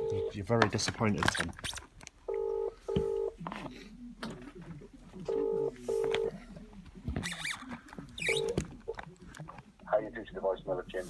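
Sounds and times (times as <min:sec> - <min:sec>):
telephone ringback tone: 0:02.3 - 0:03.4, 0:05.3 - 0:06.3.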